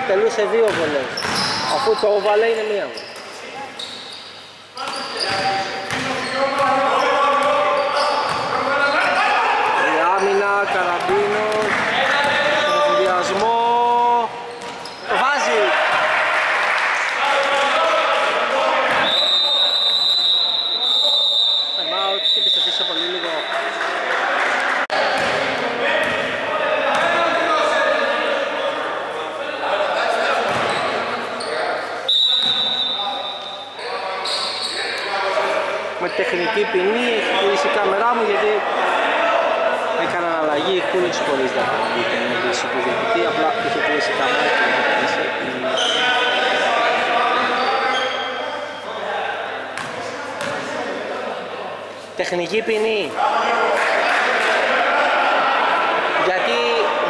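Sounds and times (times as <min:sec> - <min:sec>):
voices echoing in hall: 0:00.0 - 0:57.0.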